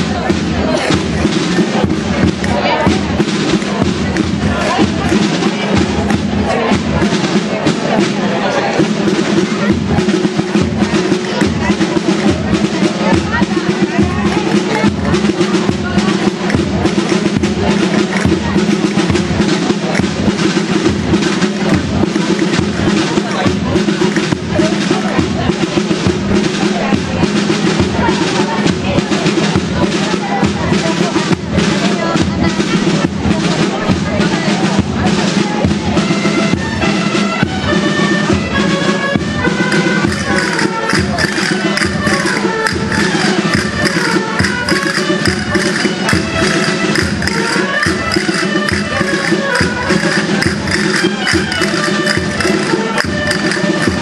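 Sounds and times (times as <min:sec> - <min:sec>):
drum beating steady pulse: 0:00.0 - 0:54.0.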